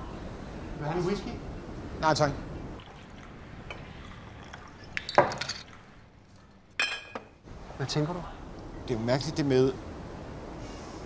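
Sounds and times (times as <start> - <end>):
liquid pouring over ice: 2.8 - 6.4
glass clinks: 6.8 - 7.3.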